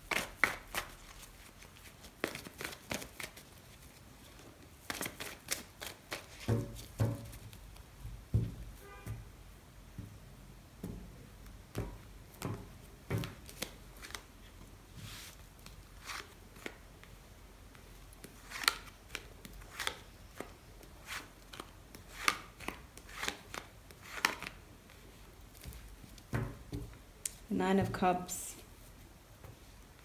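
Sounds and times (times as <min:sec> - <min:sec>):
soft card rustle: 0:00.1 - 0:06.8, 0:13.2 - 0:26.2.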